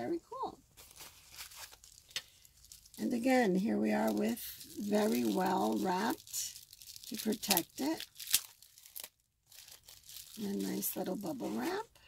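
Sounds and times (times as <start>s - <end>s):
bubble wrap crinkling: 0.6s - 12.0s.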